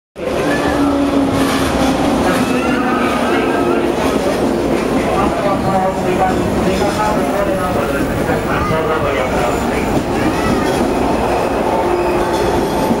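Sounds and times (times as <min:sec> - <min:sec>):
voices: 0:00.2 - 0:12.3
electric train rumbling past: 0:00.2 - 0:13.0.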